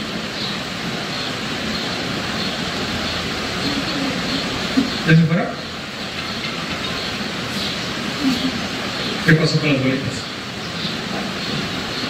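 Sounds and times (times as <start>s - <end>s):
faint voice: 3.6s - 4.9s.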